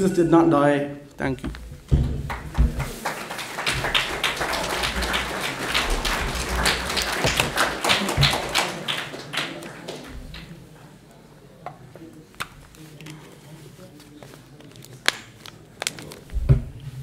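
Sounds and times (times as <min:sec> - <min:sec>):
audience applauding: 0:02.2 - 0:10.6.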